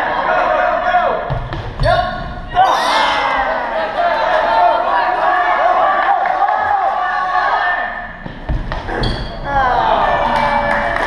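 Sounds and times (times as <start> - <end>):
crowd cheering and yelling: 2.5 - 8.2, 9.4 - 11.0.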